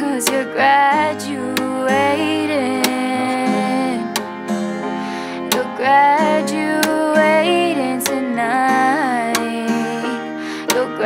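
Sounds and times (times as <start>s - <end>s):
strummed acoustic guitar: 0.0s - 11.0s
woman singing slow song: 0.0s - 11.0s.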